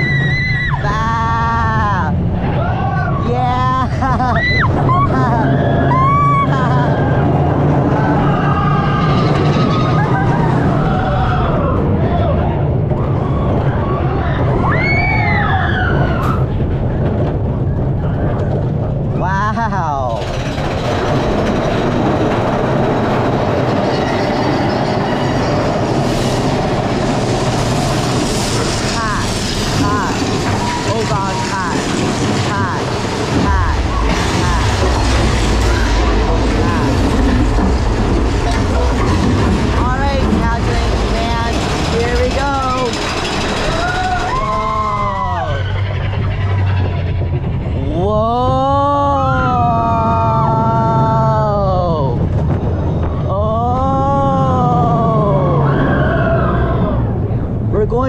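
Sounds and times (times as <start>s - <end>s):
riders whooping and screaming: 0.0s - 18.6s, 22.4s - 47.3s, 47.9s - 52.4s, 53.1s - 57.4s
roller coaster rumbling on track: 0.0s - 58.0s.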